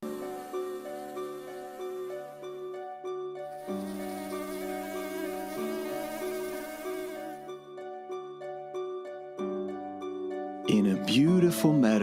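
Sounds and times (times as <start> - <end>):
cartoon bee buzzing: 0.0 - 7.7.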